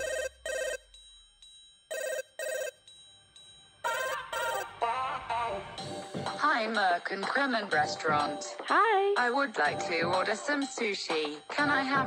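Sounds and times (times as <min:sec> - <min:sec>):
telephone ringing: 0:00.0 - 0:00.9, 0:01.9 - 0:02.9, 0:03.8 - 0:04.7.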